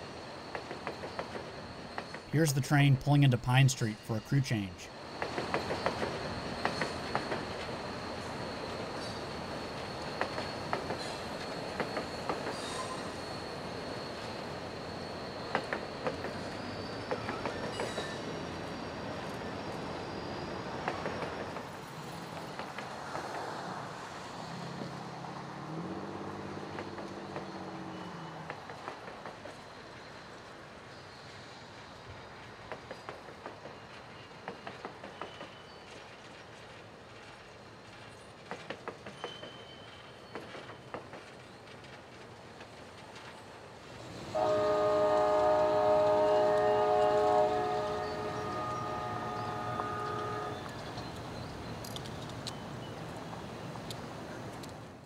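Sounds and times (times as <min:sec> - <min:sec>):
train wheels squealing: 0:00.0 - 0:02.9, 0:05.1 - 0:25.0, 0:26.3 - 0:36.4, 0:37.2 - 0:41.7, 0:44.2 - 0:53.1
wheels clicking over rail joints: 0:49.8 - 0:55.0.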